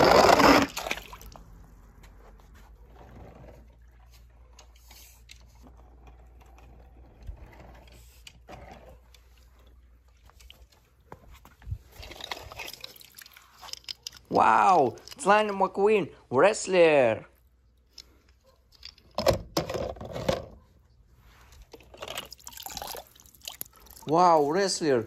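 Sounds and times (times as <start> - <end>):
skimmer net sloshing in pool water: 0.0 - 1.4, 11.8 - 14.0
water splashing: 0.0 - 1.6, 11.9 - 13.7.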